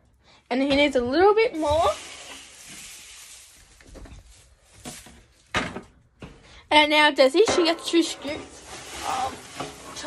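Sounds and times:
dry chaff rustling: 0:01.6 - 0:05.5, 0:08.4 - 0:10.0.

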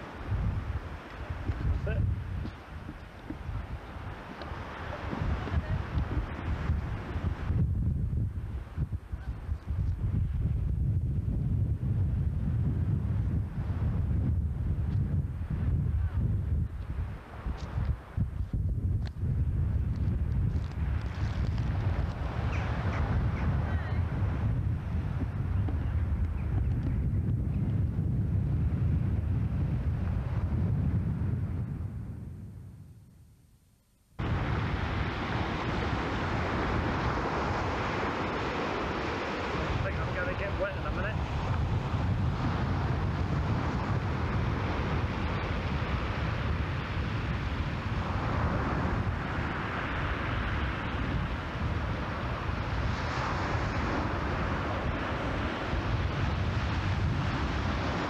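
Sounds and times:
wind buffeting microphone: 0:00.0 - 0:33.2, 0:34.2 - 0:58.0.

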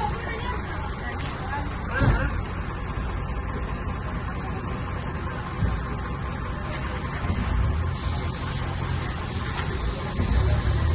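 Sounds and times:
engine idling: 0:00.0 - 0:10.9.

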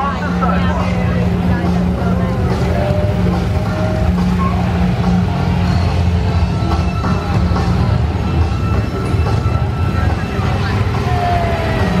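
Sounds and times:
crowd voices: 0:00.0 - 0:12.0.

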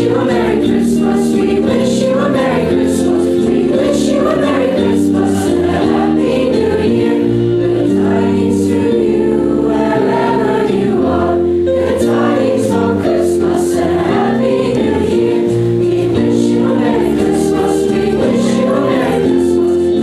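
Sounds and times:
choir singing in harmony: 0:00.0 - 0:20.0.

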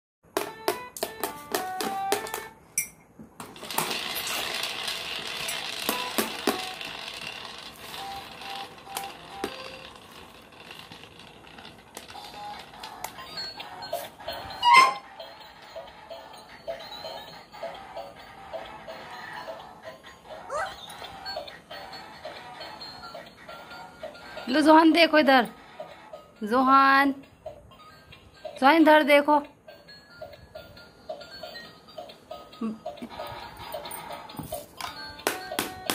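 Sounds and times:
tinny electronic toy tunes: 0:04.8 - 0:10.2, 0:12.1 - 0:35.9.

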